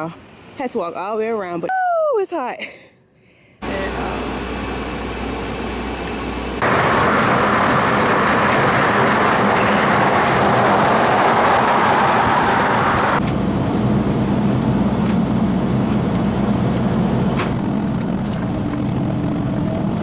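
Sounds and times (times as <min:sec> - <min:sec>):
road and wind noise: 0:04.4 - 0:20.0.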